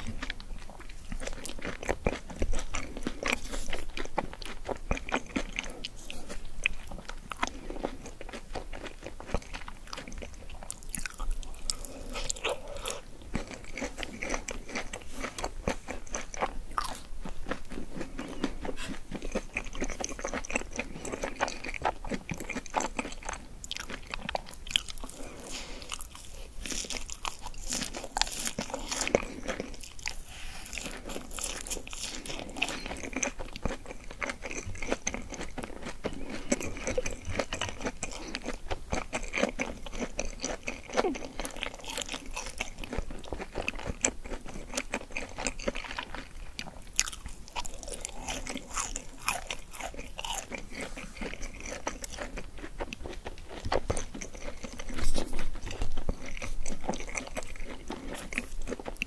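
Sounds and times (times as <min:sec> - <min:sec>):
chewing crunchy fried food: 0:00.0 - 0:59.0.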